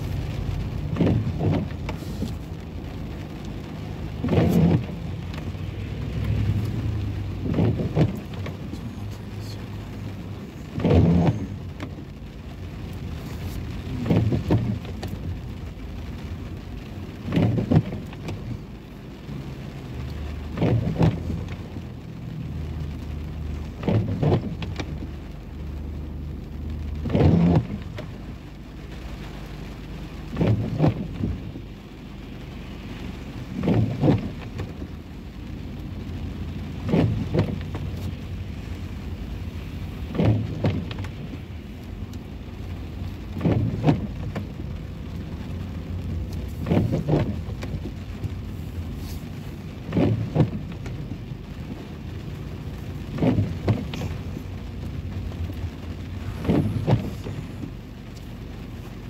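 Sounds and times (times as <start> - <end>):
idling car hum: 0.0 - 59.0
rain on car: 0.0 - 59.0
windshield wipers sweeping: 0.0 - 59.0.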